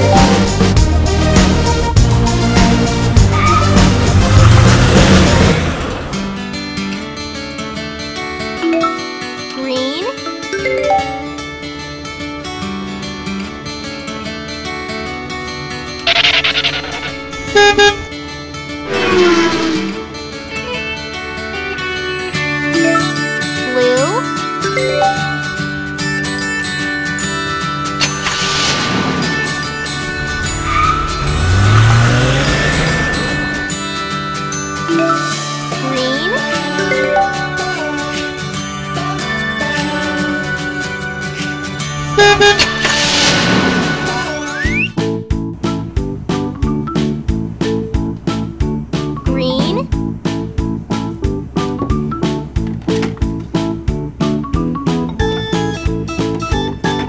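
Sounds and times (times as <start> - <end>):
background music: 0.0 - 57.0
car horn beeps: 16.1 - 18.2, 42.0 - 42.9
noisy rushing burst: 42.5 - 44.4.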